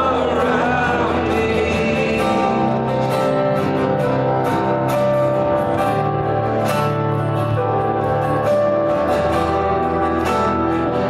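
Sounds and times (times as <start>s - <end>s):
live worship band playing: 0.0s - 11.0s.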